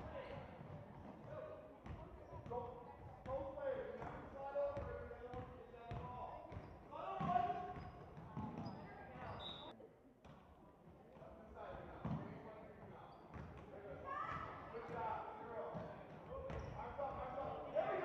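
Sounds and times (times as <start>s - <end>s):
shouts and chatter echoing: 6.0s - 7.9s, 13.8s - 15.6s, 16.8s - 18.0s.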